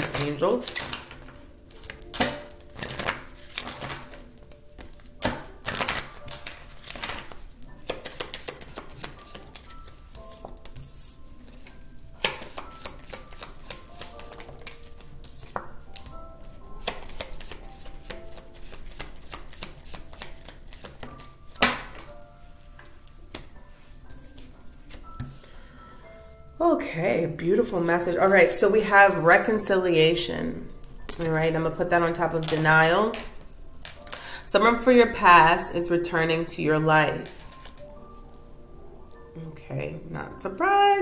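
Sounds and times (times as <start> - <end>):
cards being shuffled: 0.0 - 16.2, 16.8 - 22.0
soft sparse background music: 0.0 - 41.0.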